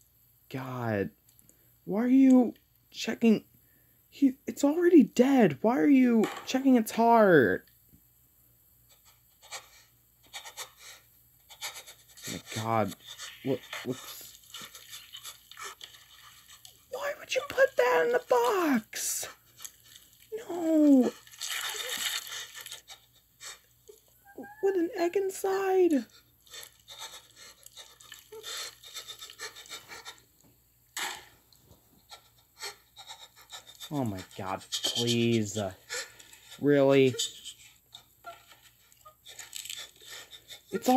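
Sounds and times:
gloved hand rubbing raw turkey: 0:11.6 - 0:18.8, 0:21.2 - 0:24.7
raw meat crunching and squishing: 0:21.1 - 0:22.8.

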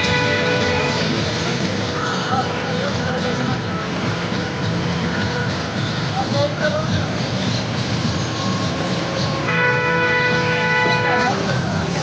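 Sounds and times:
horn blast: 0:00.0 - 0:01.7, 0:09.1 - 0:11.9
crowd noise: 0:00.0 - 0:12.0.

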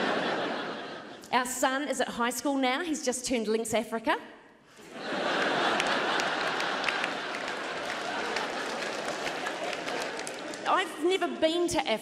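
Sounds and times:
audience laughing: 0:00.0 - 0:01.3, 0:04.8 - 0:10.8
audience applauding: 0:05.2 - 0:10.9.

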